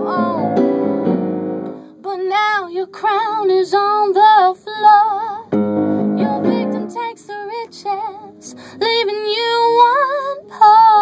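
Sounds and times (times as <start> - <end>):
woman singing: 0.0 - 0.6, 2.0 - 5.5, 6.2 - 11.0.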